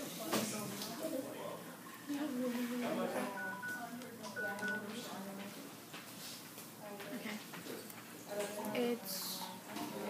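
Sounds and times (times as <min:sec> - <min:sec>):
short electronic beeps: 0:03.4 - 0:04.9.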